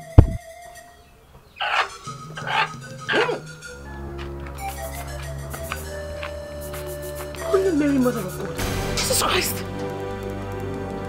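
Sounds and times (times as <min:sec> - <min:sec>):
background music score: 0:00.0 - 0:11.0
dog barking: 0:01.6 - 0:03.5.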